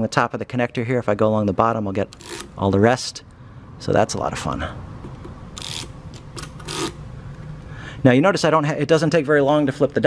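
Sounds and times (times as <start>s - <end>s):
probe scraping rattle: 5.5s - 7.0s.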